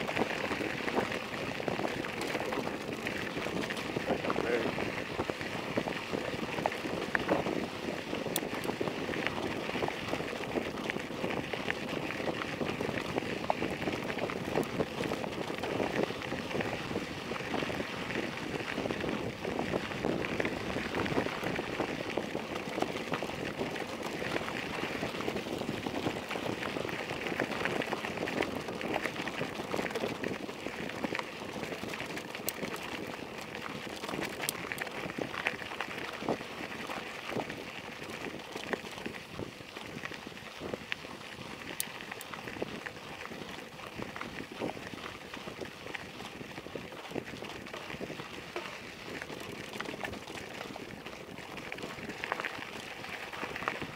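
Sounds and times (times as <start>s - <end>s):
bicycle tyres crunching on gravel: 0.0s - 53.9s
bike rattling: 0.0s - 53.9s.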